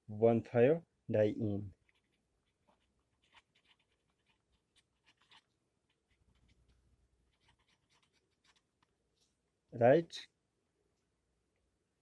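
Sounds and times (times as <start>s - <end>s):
marker pen scratching on paper: 1.8s - 8.9s.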